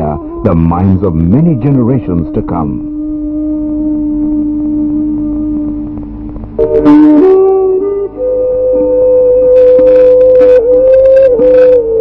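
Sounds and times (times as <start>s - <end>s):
long held music note: 0.0s - 12.0s.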